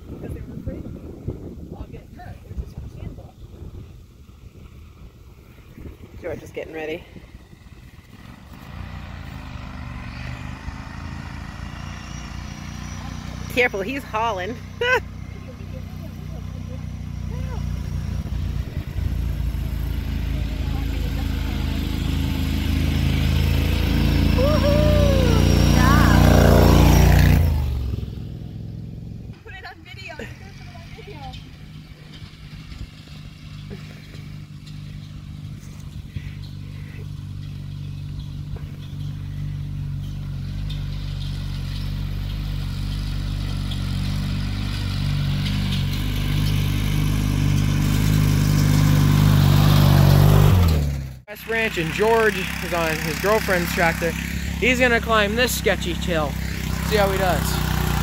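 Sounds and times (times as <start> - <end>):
riding lawn mower engine: 0.0 - 58.0.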